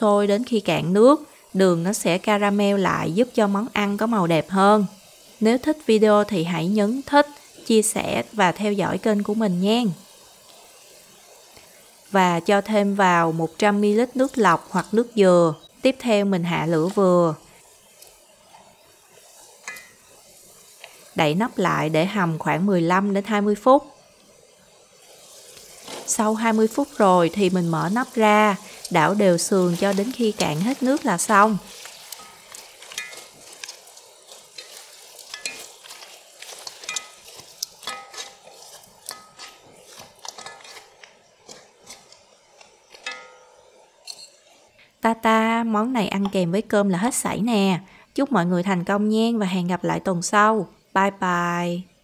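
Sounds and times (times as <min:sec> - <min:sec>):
faint steady sizzle in a pan: 0:00.0 - 0:52.0
metal utensil scraping a pan: 0:18.5 - 0:20.1, 0:27.8 - 0:44.6
metallic clink: 0:42.9 - 0:44.4.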